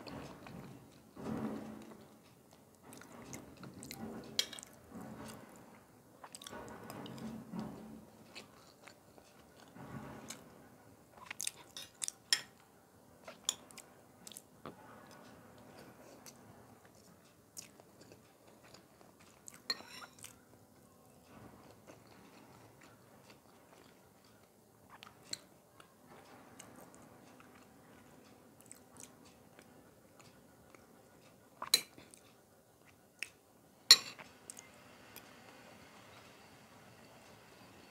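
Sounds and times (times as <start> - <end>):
person chewing food: 2.0 - 5.4, 6.2 - 7.2, 8.2 - 10.4, 11.2 - 12.6, 13.2 - 20.5, 21.6 - 26.0, 26.6 - 33.4.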